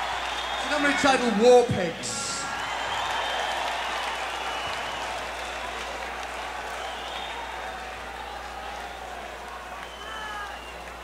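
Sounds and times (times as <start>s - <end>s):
audience cheering and applauding: 0.0s - 11.0s
high whistles: 2.4s - 5.5s, 6.7s - 7.5s, 9.8s - 11.0s.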